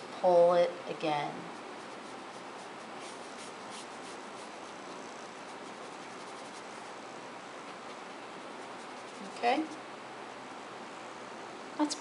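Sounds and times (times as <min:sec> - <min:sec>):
room hiss: 0:00.0 - 0:12.0
brush stroking on paper: 0:01.3 - 0:09.8.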